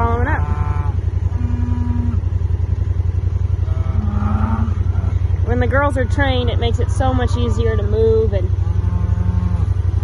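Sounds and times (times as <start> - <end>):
cattle lowing: 0.0 - 10.0
small engine running: 0.0 - 10.0.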